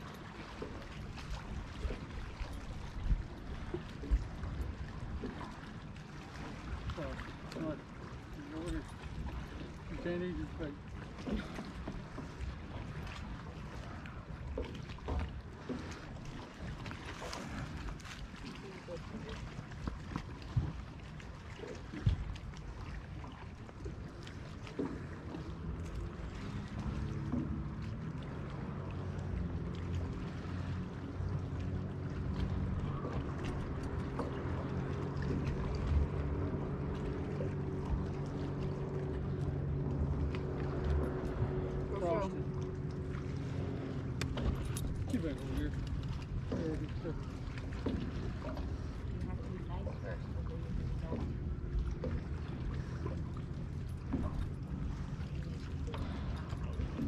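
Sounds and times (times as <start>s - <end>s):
engine hum: 0.0s - 57.0s.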